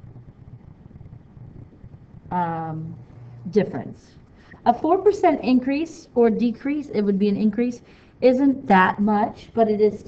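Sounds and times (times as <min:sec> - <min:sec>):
low rumbling noise: 0:00.0 - 0:07.2
person speaking: 0:02.3 - 0:10.0.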